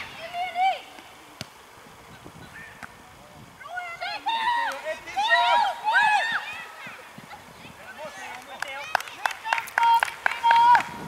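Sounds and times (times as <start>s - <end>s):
children shouting: 3.9s - 7.1s.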